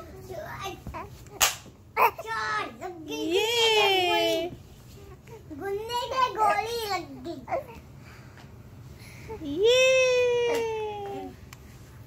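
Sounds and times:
sharp snap: 1.3 - 1.7.

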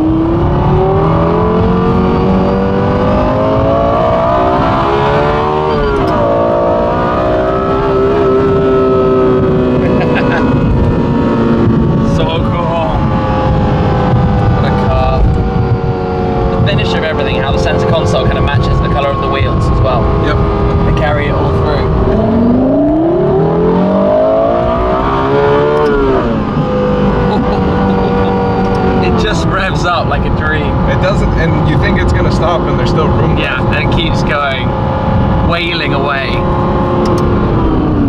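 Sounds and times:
car engine revving: 0.0 - 38.0.

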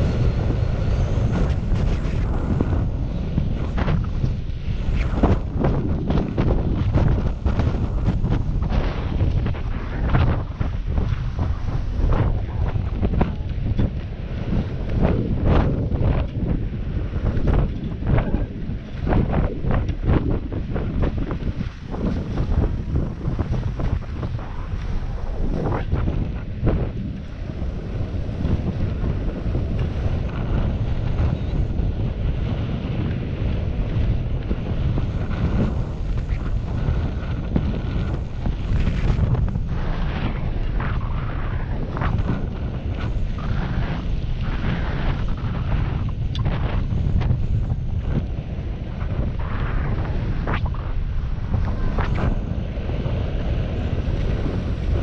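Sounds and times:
skis scraping over snow: 0.0 - 55.0
wind buffeting microphone: 0.0 - 55.0.

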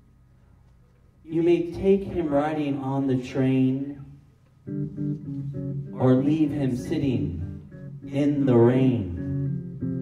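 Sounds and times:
electric bass plucked notes: 4.6 - 10.0.

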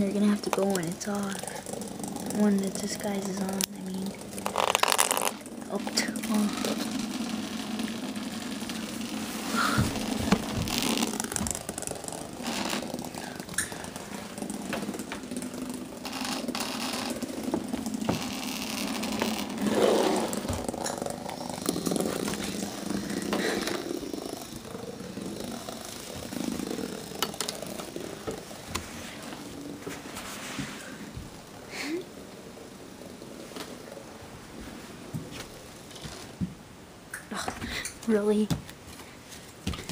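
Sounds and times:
toy motor buzzing: 0.0 - 29.8.

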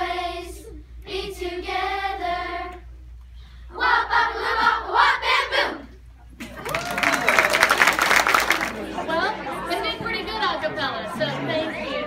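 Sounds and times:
children's choir singing: 0.0 - 2.9, 3.8 - 5.9
crowd chatter: 6.2 - 12.0
audience applause and cheers: 6.4 - 9.0.

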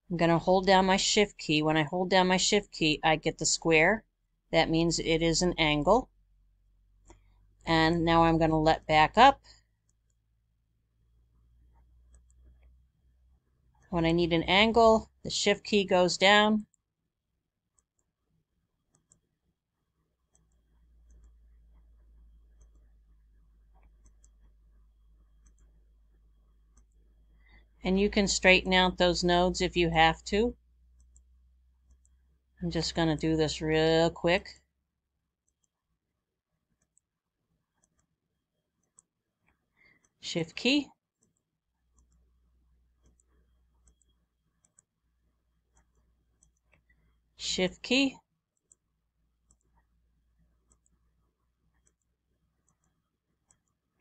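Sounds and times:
person speaking: 0.0 - 6.1, 7.6 - 9.6, 13.9 - 16.8, 27.8 - 30.6, 32.6 - 34.6, 40.2 - 40.9, 47.4 - 48.2
low room hum: 0.0 - 36.3
computer mouse clicks: 11.6 - 12.8, 18.9 - 19.4, 20.3 - 27.7, 30.9 - 32.4, 35.5 - 35.8, 36.8 - 37.1, 37.7 - 38.1, 38.8 - 40.2, 41.2 - 44.9, 45.7 - 47.2, 48.6 - 54.0
faint computer mouse clicks: 11.7 - 12.8, 43.0 - 44.9, 49.5 - 49.8, 50.6 - 51.0, 51.8 - 53.8.

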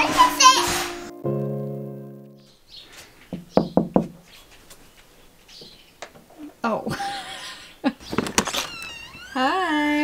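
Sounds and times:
held musical chord: 0.0 - 2.6
hands knocking on window glass: 3.4 - 4.2.

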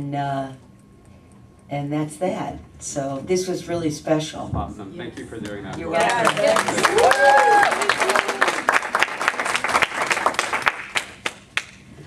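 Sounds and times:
audience applauding: 5.4 - 11.8.

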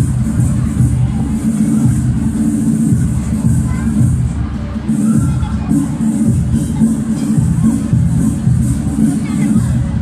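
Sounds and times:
loud music with heavy bass beat: 0.0 - 10.0.

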